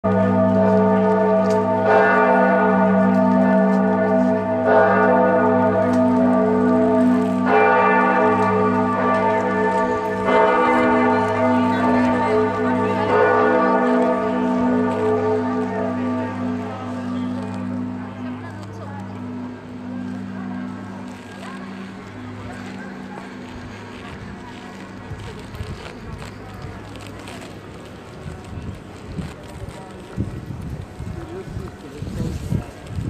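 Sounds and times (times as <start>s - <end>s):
large church bell tolling: 0.0s - 25.4s.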